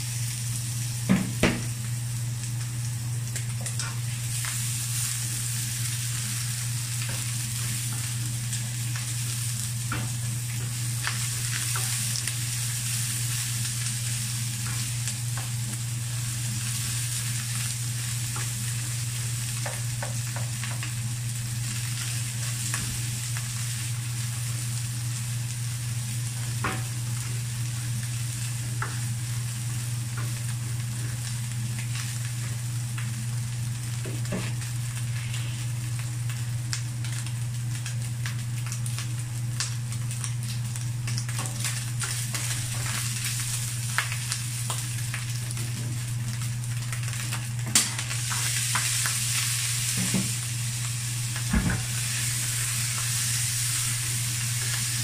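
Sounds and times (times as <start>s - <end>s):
meat sizzling in a frying pan: 0.0s - 55.0s.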